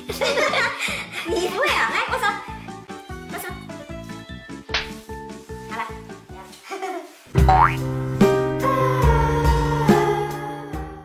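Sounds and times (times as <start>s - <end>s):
background music with bass: 7.4s - 11.0s.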